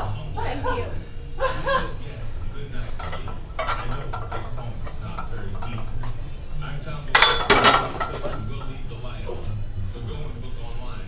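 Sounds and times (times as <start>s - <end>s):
barbell clanking onto rack: 2.8s - 6.2s, 7.1s - 8.8s.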